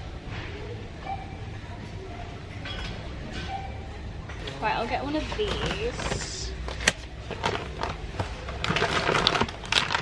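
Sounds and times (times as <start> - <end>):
faint background sounds: 0.0 - 9.1.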